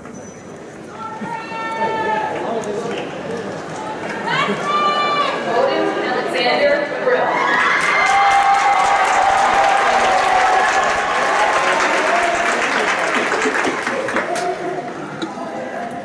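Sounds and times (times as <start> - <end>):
audience applauding: 7.5 - 14.9.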